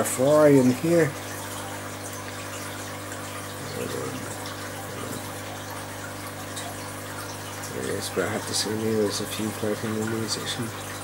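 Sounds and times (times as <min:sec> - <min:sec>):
running water rushing: 0:00.0 - 0:11.0.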